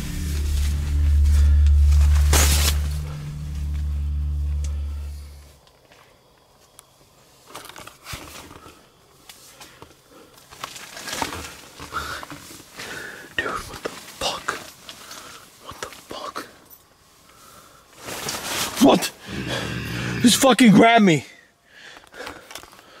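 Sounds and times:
people whispering: 0:13.4 - 0:14.7, 0:15.6 - 0:16.6, 0:18.9 - 0:20.8.

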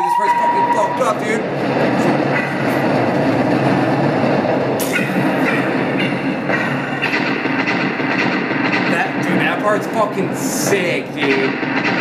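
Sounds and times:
sharp clacks: 0:01.6 - 0:12.0.

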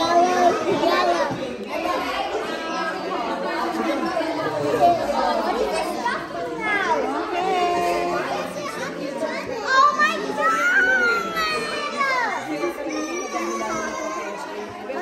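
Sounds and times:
crowd chattering in hall: 0:00.0 - 0:15.0
high children's voices: 0:00.0 - 0:15.0.

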